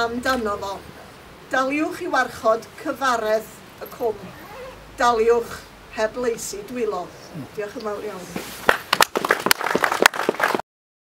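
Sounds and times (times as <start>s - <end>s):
audience applauding: 8.6s - 10.6s.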